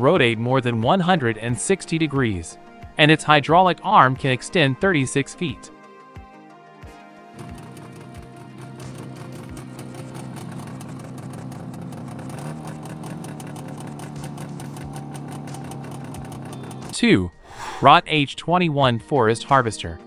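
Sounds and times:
background music: 0.0s - 20.0s
rapid machine rattle: 7.4s - 17.0s
machine drone: 7.4s - 17.7s.

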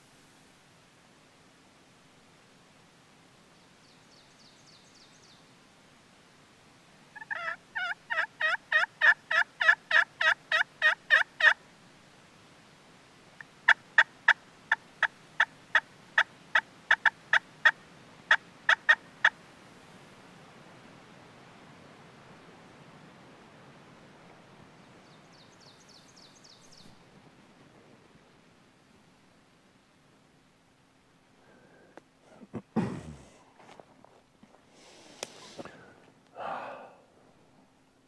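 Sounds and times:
turkey pot call cutts: 7.2s - 11.6s
turkey pot call yelps: 7.2s - 11.6s.

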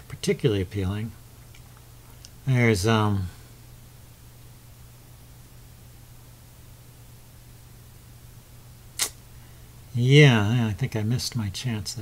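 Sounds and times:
low electrical hum: 0.0s - 12.0s
sharp click: 9.0s - 9.2s.

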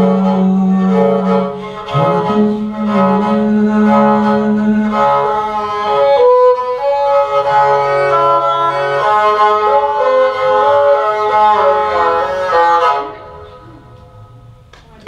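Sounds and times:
bowed fiddle melody over drone: 0.0s - 14.1s.

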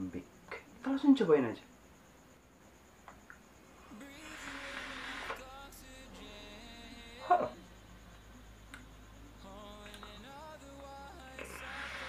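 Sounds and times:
faint music: 0.0s - 12.0s
vape hiss and coil sizzle: 3.0s - 12.0s.

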